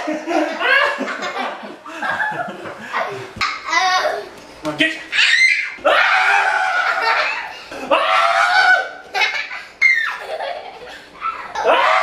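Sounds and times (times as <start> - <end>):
loud laughter: 0.0 - 2.7, 6.1 - 11.0.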